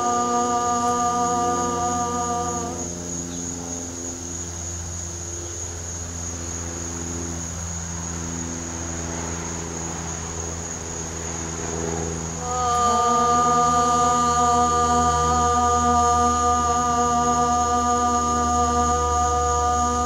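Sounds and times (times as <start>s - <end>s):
woman chanting: 0.0s - 3.5s, 12.4s - 20.0s
high-pitched insect chorus: 0.0s - 20.0s
low steady hum: 0.0s - 20.0s.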